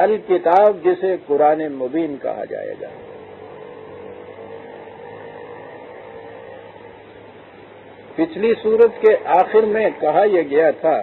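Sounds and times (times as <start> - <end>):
background hum and hiss: 0.0 - 11.0
constant mid-pitched tone: 0.0 - 11.0.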